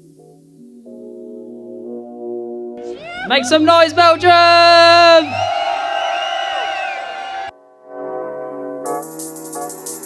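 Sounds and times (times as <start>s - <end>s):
music: 0.0s - 10.0s
person shouting into microphone: 2.8s - 5.4s
crowd cheering: 2.8s - 7.5s.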